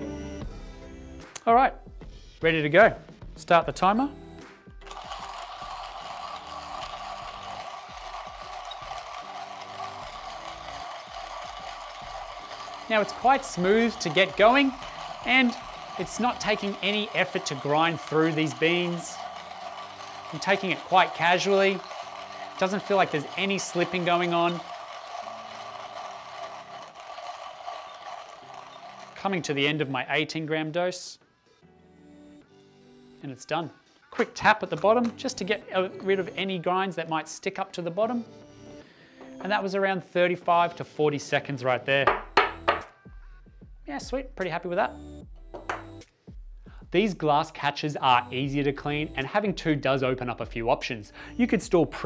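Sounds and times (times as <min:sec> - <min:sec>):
hand coffee grinder grinding beans: 0:04.8 - 0:30.4, 0:42.1 - 0:42.9.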